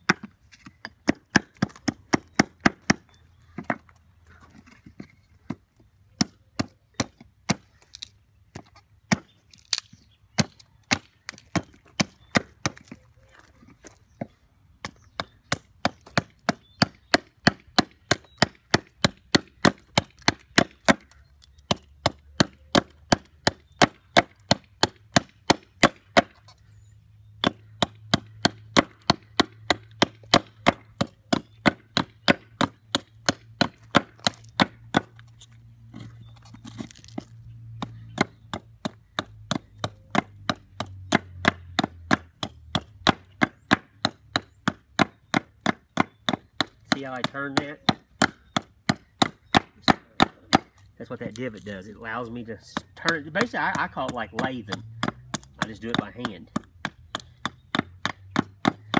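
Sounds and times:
hatchet chopping wood: 0.0s - 4.0s, 4.6s - 13.0s, 14.2s - 26.5s, 27.4s - 58.9s.

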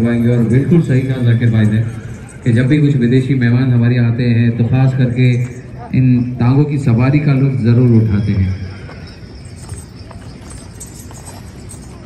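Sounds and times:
horse hooves clip-clopping: 8.7s - 12.0s.

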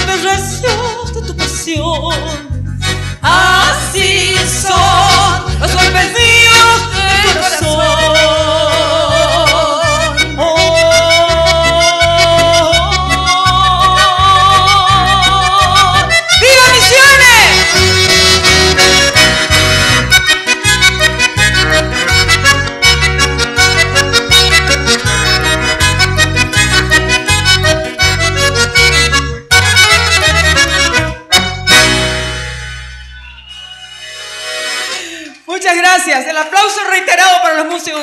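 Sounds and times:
accordion-led folk band playing: 0.0s - 35.5s
high sliding note: 31.7s - 35.2s.

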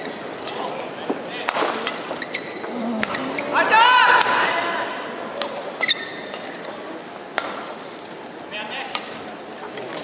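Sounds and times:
crowd murmur in a large hall: 0.0s - 10.0s.

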